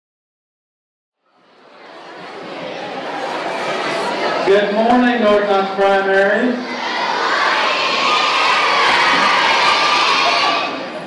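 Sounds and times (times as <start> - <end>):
children calling in unison: 6.6 - 10.9.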